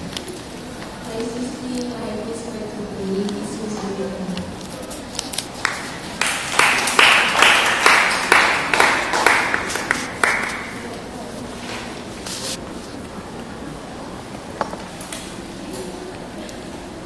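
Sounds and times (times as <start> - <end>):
audience applause: 5.6 - 10.9.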